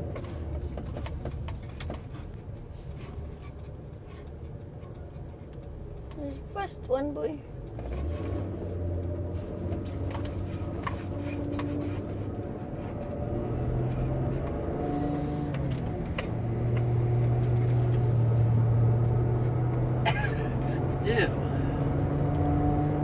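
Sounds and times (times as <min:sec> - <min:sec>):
van engine and road noise: 0:00.0 - 0:23.0.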